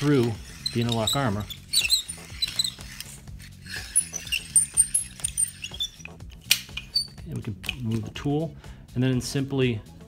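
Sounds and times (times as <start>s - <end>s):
blade scraping metal cable armor: 0.0s - 7.2s.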